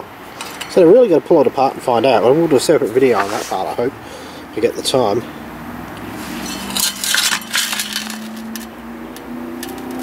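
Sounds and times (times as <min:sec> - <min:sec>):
metal wheel clinking and rattling: 0:06.2 - 0:08.7.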